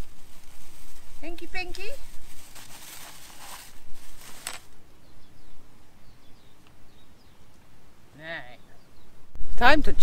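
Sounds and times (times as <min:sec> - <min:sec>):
plastic bag rustling: 0:00.0 - 0:04.8
faint bird chirps: 0:04.9 - 0:09.2.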